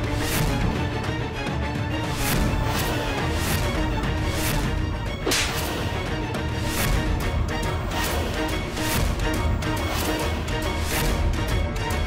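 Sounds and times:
dramatic background score: 0:00.0 - 0:12.0
percussive hits: 0:02.2 - 0:11.6
whip-like swish: 0:05.2 - 0:06.0.

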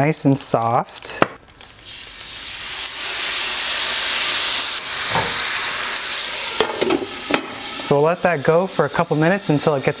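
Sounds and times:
steak sizzling on grill pan: 0:01.7 - 0:10.0.

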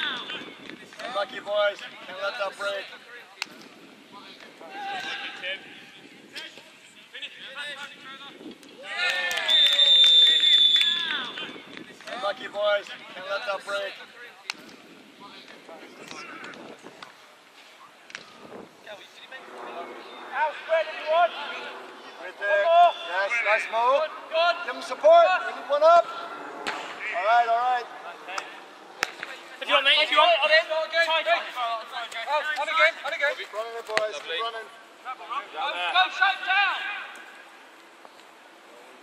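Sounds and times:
footballers shouting: 0:04.5 - 0:06.1, 0:08.8 - 0:14.6, 0:20.0 - 0:34.6, 0:35.2 - 0:37.5.

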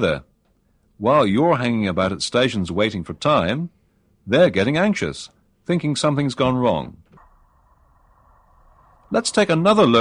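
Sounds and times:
faint low rumble and hiss: 0:00.0 - 0:10.0.

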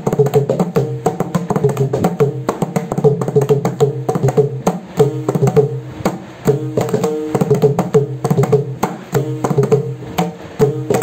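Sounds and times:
hand drum fast finger strokes: 0:00.0 - 0:11.0.

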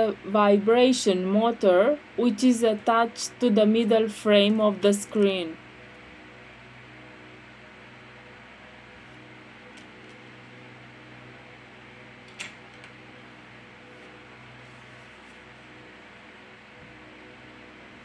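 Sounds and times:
low hum with hiss: 0:00.0 - 0:18.0.

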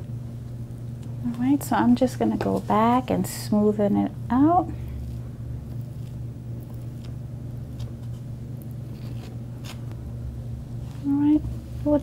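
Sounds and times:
low equipment hum: 0:00.0 - 0:12.0
knife scraping icing: 0:04.9 - 0:09.9.

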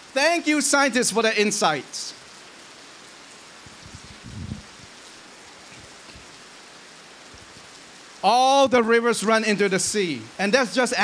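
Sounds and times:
steady hiss: 0:00.0 - 0:11.0
soft low bump: 0:03.7 - 0:04.9.

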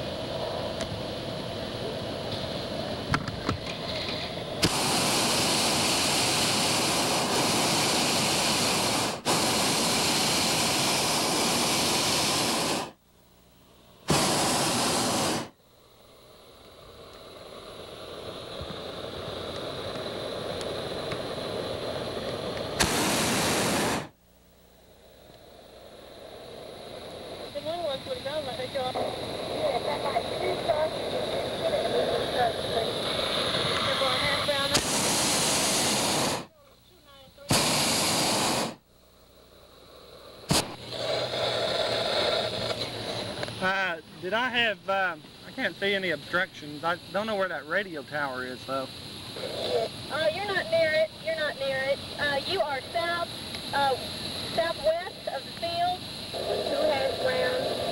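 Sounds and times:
propane burner blasts: 0:00.0 - 0:13.0, 0:13.9 - 0:57.9.

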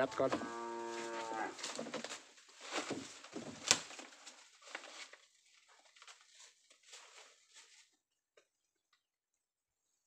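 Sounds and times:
cow mooing: 0:00.0 - 0:01.6.

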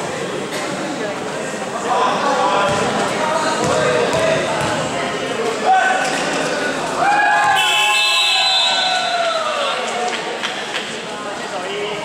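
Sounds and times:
basketball bouncing on court floor: 0:02.7 - 0:03.0, 0:03.6 - 0:04.9.

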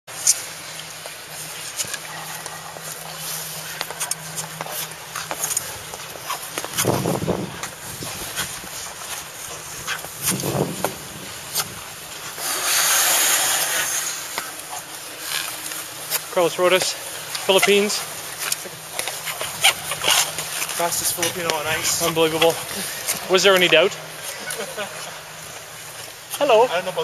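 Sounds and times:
skate blades scraping ice: 0:00.2 - 0:27.0.

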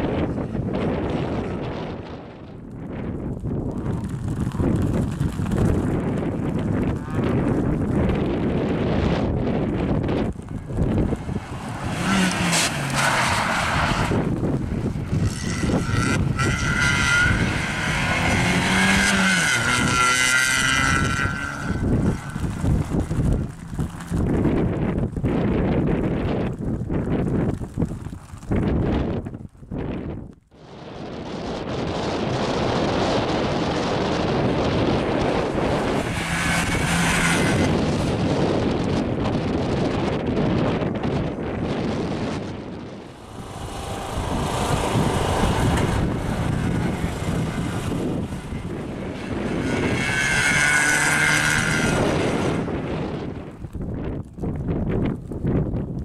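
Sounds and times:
car engine revving hard: 0:11.0 - 0:14.3, 0:15.2 - 0:23.2, 0:43.2 - 0:53.1.

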